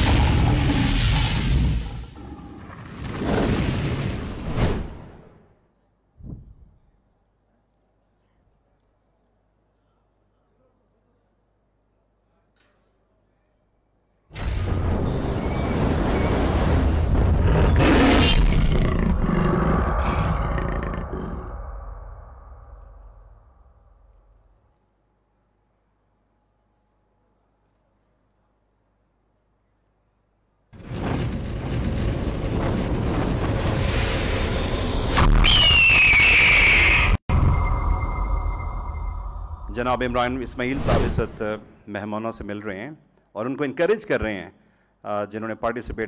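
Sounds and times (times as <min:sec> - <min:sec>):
boom: 0:00.0 - 0:02.2, 0:14.3 - 0:24.0, 0:30.8 - 0:41.7
deep rumble: 0:14.6 - 0:24.4, 0:37.3 - 0:41.4
big cat roar: 0:17.3 - 0:21.7
high falling screech: 0:33.7 - 0:40.7.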